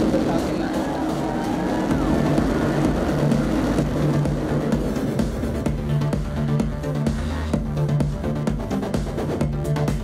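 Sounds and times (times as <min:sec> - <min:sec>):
electronic background music: 0:00.0 - 0:10.0.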